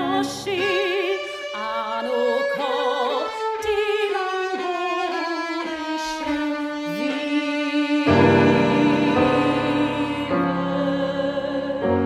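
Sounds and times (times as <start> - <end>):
violin melody with vibrato: 0.0 - 12.0
piano accompaniment: 7.9 - 12.0.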